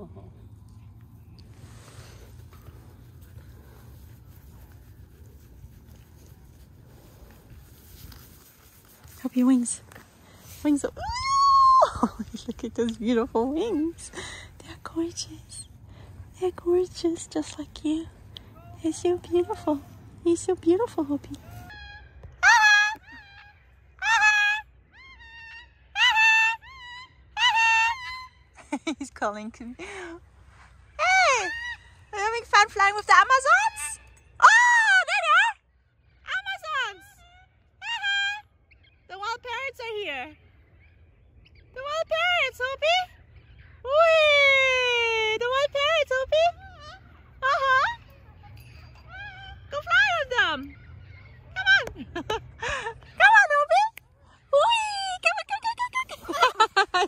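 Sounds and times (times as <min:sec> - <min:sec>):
parrots calling: 0:46.6 - 0:51.8.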